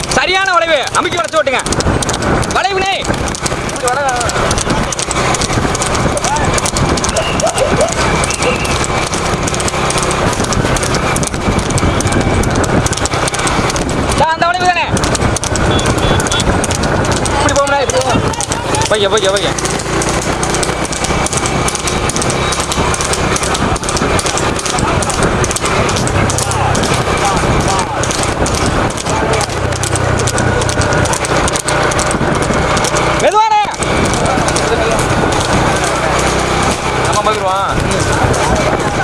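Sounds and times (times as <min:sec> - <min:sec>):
horse hooves clattering on pavement: 0:00.0 - 0:39.0
loud voices: 0:00.0 - 0:39.0.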